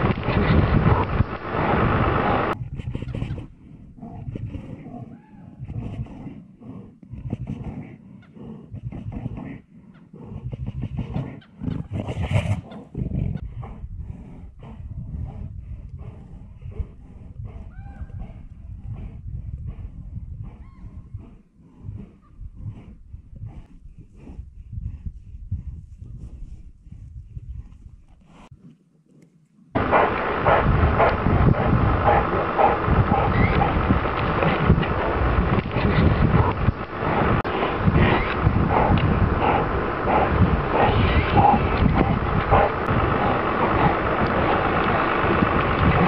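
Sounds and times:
bears growling: 0:00.0 - 0:02.6, 0:03.4 - 0:19.2, 0:29.8 - 0:46.0
loud rough crackling noise: 0:00.0 - 0:03.5, 0:29.8 - 0:46.0
faint whistled calls: 0:31.6 - 0:33.8.

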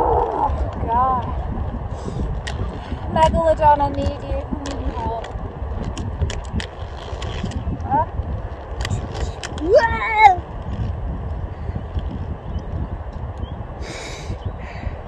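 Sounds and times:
roller skate wheels rumbling: 0:00.0 - 0:14.3
wind on microphone: 0:00.0 - 0:15.0.

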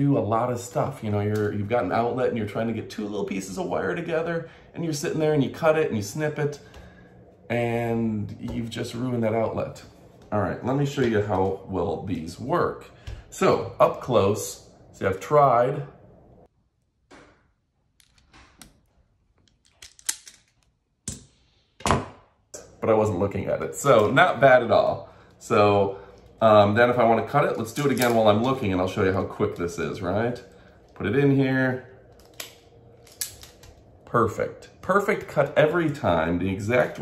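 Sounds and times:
wire stripper clicking and snapping: 0:32.1 - 0:33.8.

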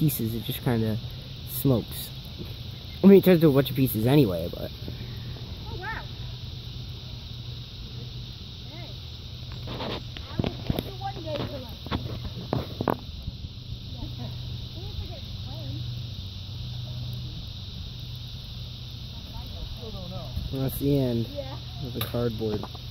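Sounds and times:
faint voices: 0:00.0 - 0:22.7
fire crackling: 0:00.0 - 0:22.9
insects chirping: 0:00.0 - 0:22.9.

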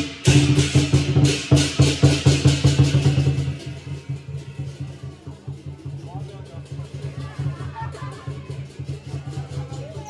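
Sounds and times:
cymbal crashes: 0:00.0 - 0:04.7
drum beating: 0:00.0 - 0:10.0.

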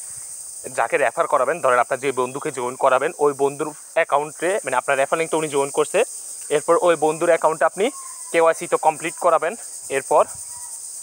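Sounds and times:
high-pitched hiss: 0:00.0 - 0:11.0
man speaking: 0:00.6 - 0:10.3.

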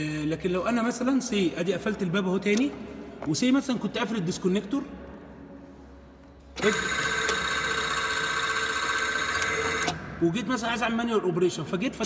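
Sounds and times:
loud electrical buzz: 0:06.6 - 0:10.1.

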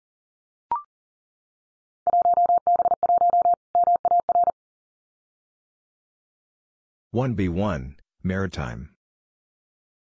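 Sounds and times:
morse code tone: 0:02.1 - 0:04.6.

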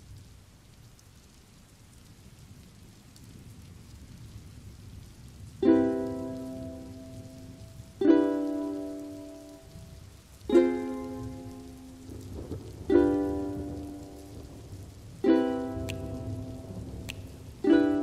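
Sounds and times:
rain: 0:00.0 - 0:18.0
ukulele strumming chords: 0:05.6 - 0:09.8, 0:10.4 - 0:14.4, 0:15.2 - 0:18.0.

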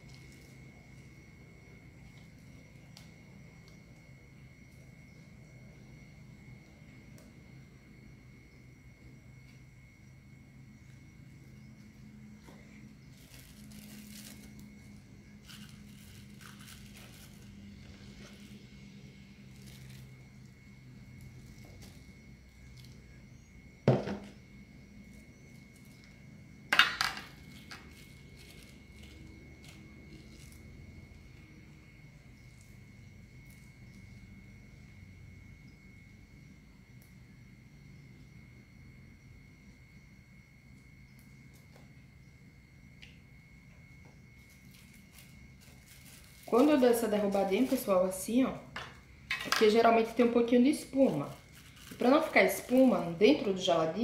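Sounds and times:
low steady hum: 0:00.0 - 0:54.0
plastic bags rustling: 0:13.1 - 0:18.5, 0:44.5 - 0:48.2, 0:51.0 - 0:53.7.

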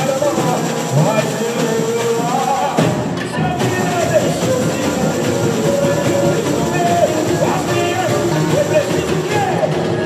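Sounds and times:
person singing melody: 0:00.0 - 0:10.0
samba drums and tamborims: 0:00.0 - 0:10.0.

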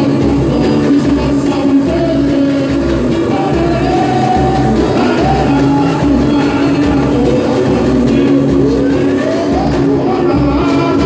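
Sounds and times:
drums: 0:00.0 - 0:11.0
group of singers singing: 0:00.0 - 0:11.0.

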